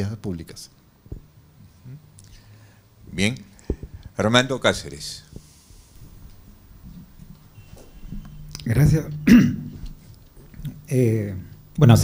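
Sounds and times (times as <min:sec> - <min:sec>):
man speaking: 0:08.6 - 0:09.8, 0:10.6 - 0:12.0
man clearing his throat: 0:09.2 - 0:09.8.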